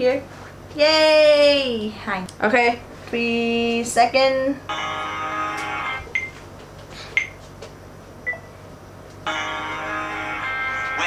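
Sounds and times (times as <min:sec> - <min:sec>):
song playing: 0:04.7 - 0:06.1, 0:09.2 - 0:11.0
music: 0:09.3 - 0:11.0.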